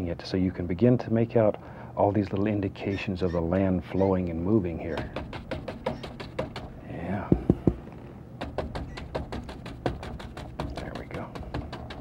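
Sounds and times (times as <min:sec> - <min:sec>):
heavier knocks: 0:04.9 - 0:07.8
paintbrush tapping canvas: 0:04.9 - 0:07.8, 0:08.4 - 0:12.0.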